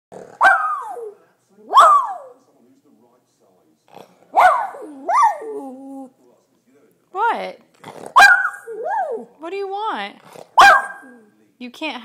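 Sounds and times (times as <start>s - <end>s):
dog barking: 0.4s - 2.4s, 4.3s - 5.5s, 8.2s - 9.3s, 10.6s - 11.3s.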